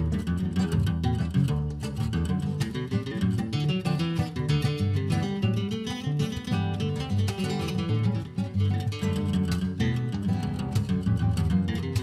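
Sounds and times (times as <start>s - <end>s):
acoustic guitar duet: 0.0s - 12.0s.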